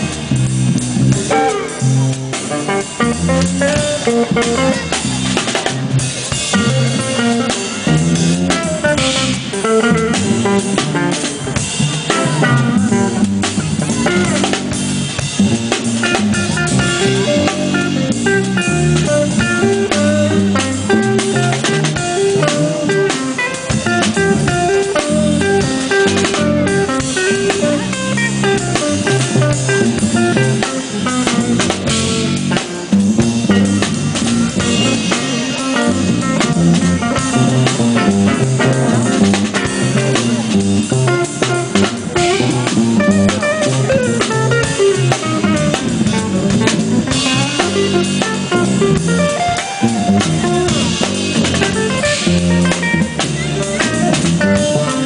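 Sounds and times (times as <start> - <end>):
drum groove: 0.0 - 55.0
guitar melody: 0.0 - 55.0
jazz-funk trio playing: 0.0 - 55.0.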